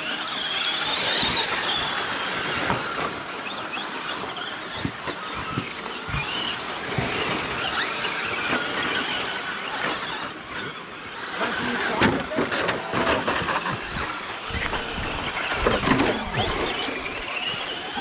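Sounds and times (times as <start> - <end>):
rc truck motors whining: 0.0 - 18.0.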